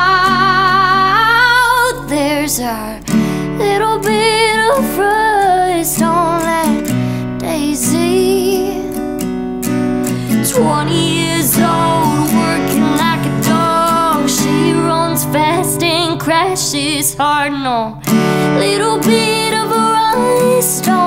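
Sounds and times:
woman singing with vibrato: 0.0 - 9.2, 10.2 - 21.0
acoustic guitar strumming: 0.0 - 21.0.

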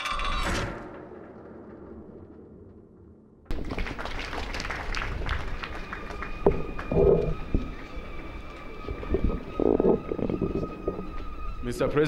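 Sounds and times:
crowd noise outdoors: 3.5 - 12.0.

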